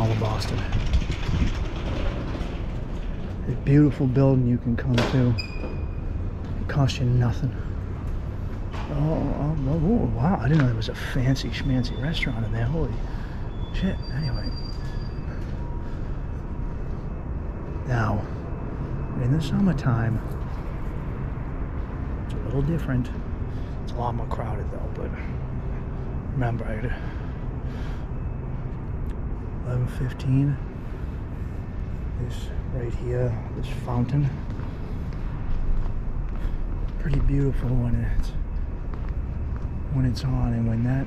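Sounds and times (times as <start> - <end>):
city background rumble: 0.0 - 41.0.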